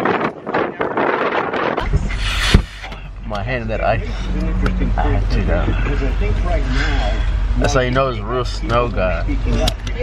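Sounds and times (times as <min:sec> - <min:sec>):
wind buffeting microphone: 0:00.0 - 0:03.3
car engine idling: 0:01.8 - 0:10.0.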